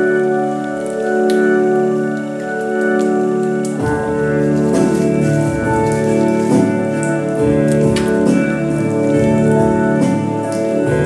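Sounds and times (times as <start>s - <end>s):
held organ chord: 0.0s - 11.0s.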